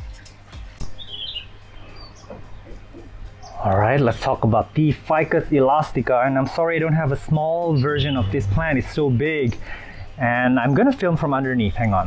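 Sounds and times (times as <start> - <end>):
small bird chirping: 0.0 - 5.0, 7.4 - 11.0.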